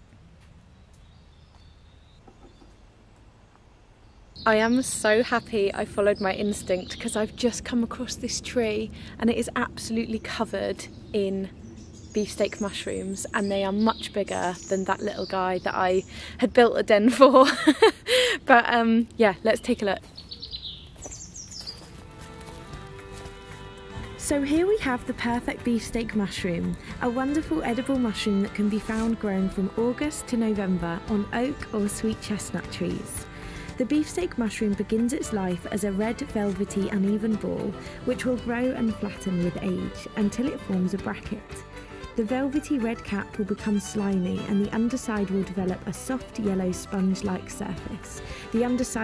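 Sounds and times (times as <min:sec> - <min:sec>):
faint woodland ambience: 0:00.0 - 0:49.0
small birds chirping: 0:00.6 - 0:16.6, 0:19.1 - 0:22.7, 0:24.4 - 0:49.0
soft background music: 0:04.5 - 0:11.5, 0:21.8 - 0:49.0.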